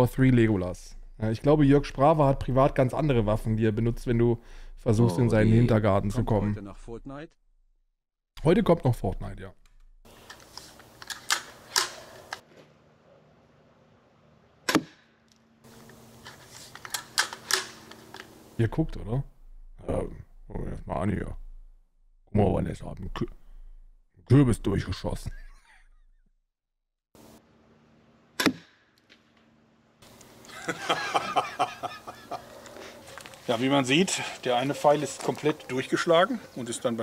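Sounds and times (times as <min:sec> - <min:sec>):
crossbow shot crack: 0:14.6 - 0:15.2, 0:16.9 - 0:18.4, 0:28.4 - 0:29.4.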